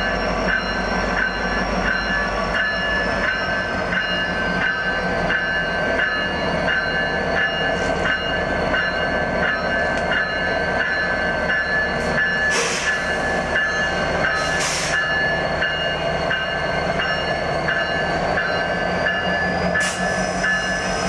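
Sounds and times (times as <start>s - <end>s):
diesel locomotive rumbling past: 0.0s - 21.0s
locomotive bell ringing: 0.0s - 21.0s.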